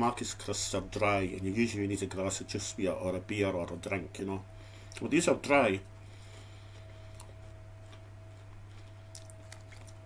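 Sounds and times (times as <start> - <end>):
low electrical hum: 0.0 - 10.0
person chewing a crisp: 6.6 - 10.0.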